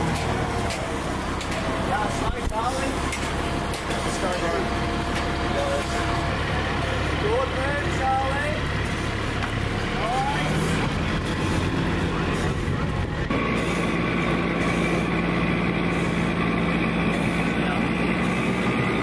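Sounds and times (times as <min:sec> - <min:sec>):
diesel engine idling: 0:00.0 - 0:19.0
high whine: 0:01.9 - 0:19.0.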